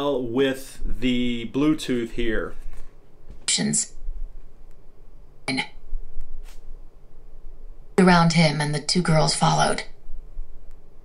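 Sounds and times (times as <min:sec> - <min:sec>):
low hum: 0:00.0 - 0:11.0
clipped narrator voice: 0:05.5 - 0:05.7.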